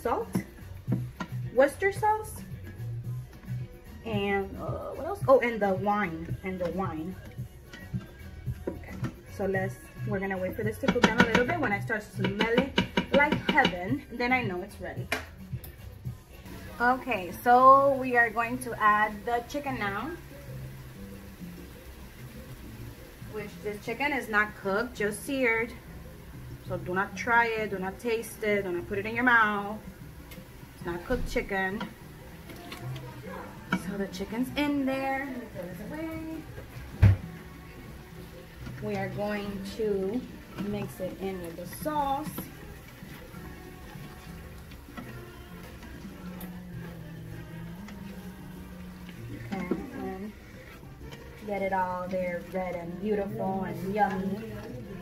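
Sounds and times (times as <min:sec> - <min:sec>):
quiet background music: 0:00.0 - 0:55.0
spatula stirring in metal pot: 0:00.2 - 0:14.4, 0:16.4 - 0:55.0.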